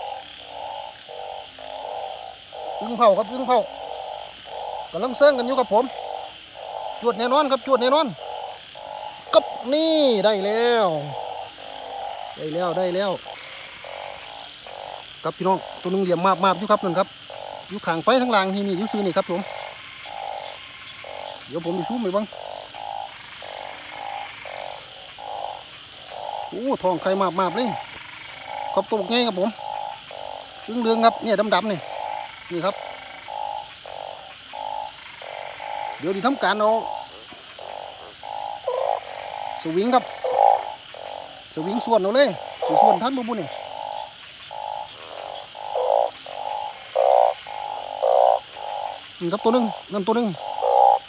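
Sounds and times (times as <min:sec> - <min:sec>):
frogs calling: 0:00.0 - 0:51.0.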